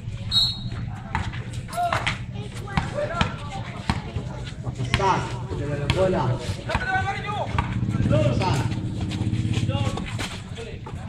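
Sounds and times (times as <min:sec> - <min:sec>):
voices of players: 0:00.0 - 0:11.0
basketball bouncing on concrete: 0:00.5 - 0:11.0.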